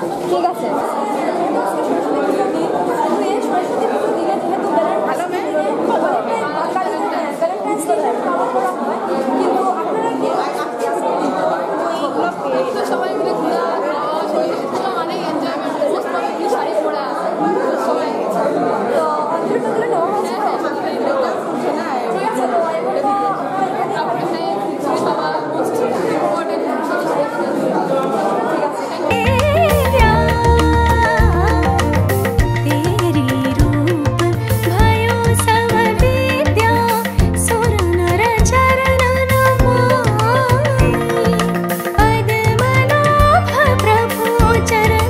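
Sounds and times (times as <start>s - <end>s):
voices chattering: 0.0s - 45.0s.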